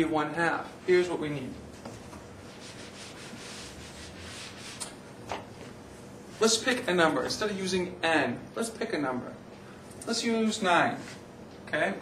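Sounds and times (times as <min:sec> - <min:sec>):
eraser wiping whiteboard: 0:01.9 - 0:05.0.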